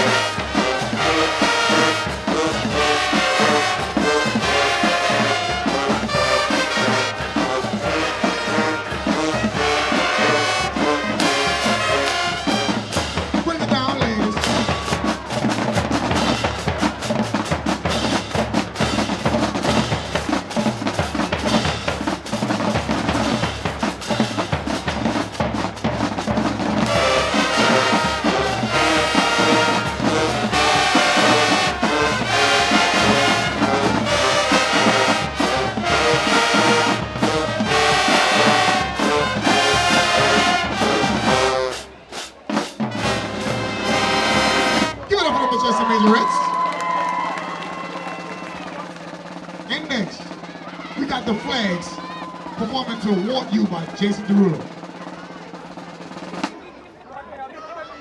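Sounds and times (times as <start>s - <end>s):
brass section playing: 0.0s - 56.1s
marching band drums: 0.0s - 57.0s.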